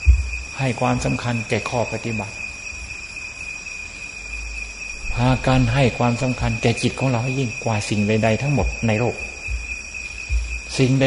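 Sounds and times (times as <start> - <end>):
low background rumble: 0.0 - 1.2, 8.6 - 10.8
cricket trilling: 0.0 - 11.0.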